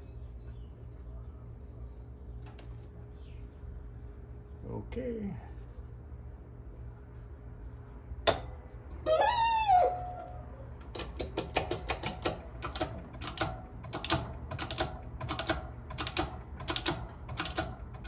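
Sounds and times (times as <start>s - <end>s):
loud metallic squeal: 9.0s - 10.3s.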